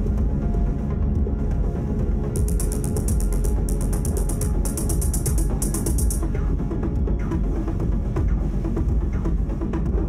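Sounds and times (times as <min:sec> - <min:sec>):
rapid high mechanical clicks: 0:02.4 - 0:06.2.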